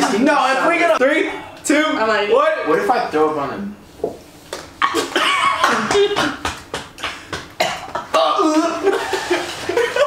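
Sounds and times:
person coughing: 0:04.8 - 0:06.4, 0:07.6 - 0:09.5.

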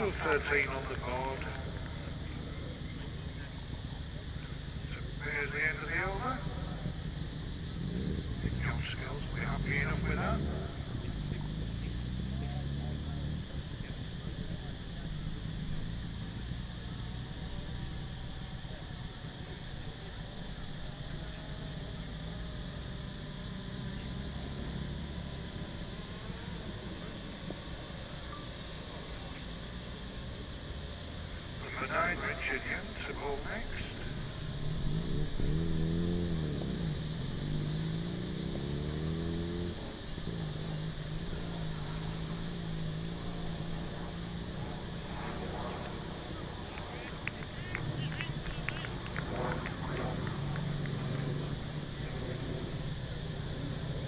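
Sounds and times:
indistinct voices: 0:00.0 - 0:15.8, 0:31.3 - 0:35.7, 0:39.7 - 0:54.0.

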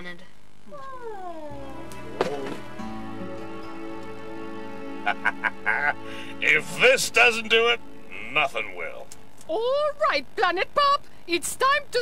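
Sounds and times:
soft background music: 0:01.2 - 0:10.1.

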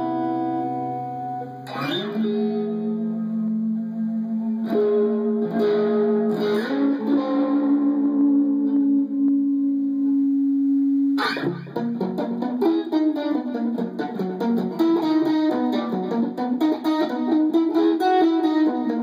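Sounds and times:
electric guitar notes: 0:00.0 - 0:19.0.

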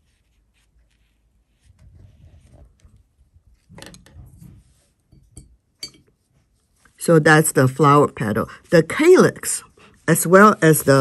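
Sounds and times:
brush rubbing on paper: 0:00.0 - 0:03.4, 0:04.4 - 0:05.0, 0:06.2 - 0:11.0.

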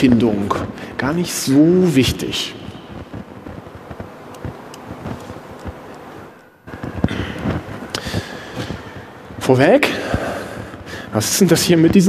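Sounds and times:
lecture hall room noise: 0:00.0 - 0:12.0
small clicks and knocks: 0:03.9 - 0:06.1.

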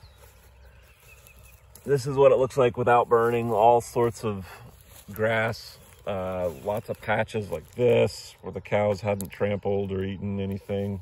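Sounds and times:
man speaking: 0:01.8 - 0:11.0.

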